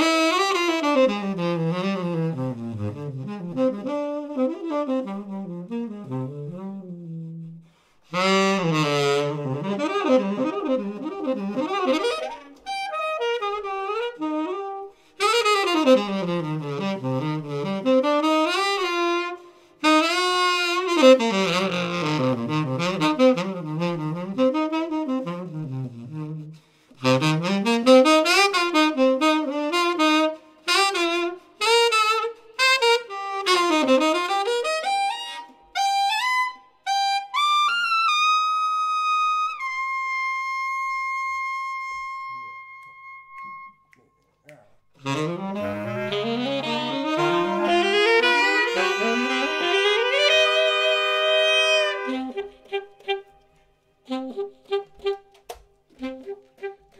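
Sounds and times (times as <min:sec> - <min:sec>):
jazz saxophones playing: 0:00.0 - 0:43.8, 0:45.0 - 0:56.9.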